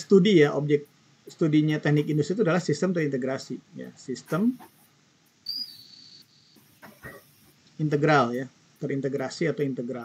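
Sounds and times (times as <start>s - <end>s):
high-pitched squeak: 5.5s - 7.0s.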